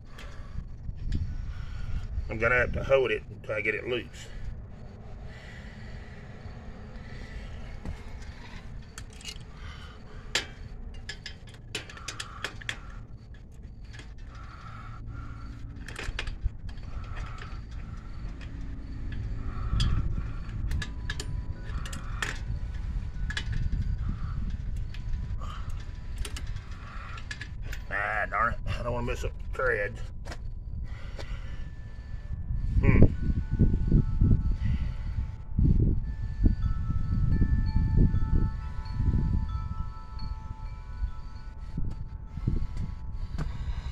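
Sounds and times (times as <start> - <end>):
steady low rumble: 0.0 - 43.9.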